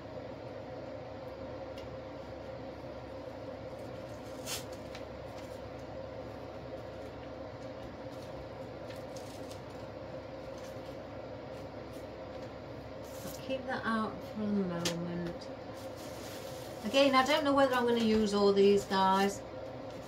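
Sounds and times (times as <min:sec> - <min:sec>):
room hum: 0:00.0 - 0:20.0.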